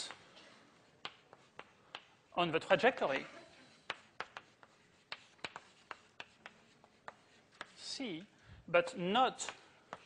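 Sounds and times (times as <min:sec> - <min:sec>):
chalk tapping and scraping on blackboard: 0:00.0 - 0:03.0, 0:03.6 - 0:08.3, 0:09.3 - 0:10.0.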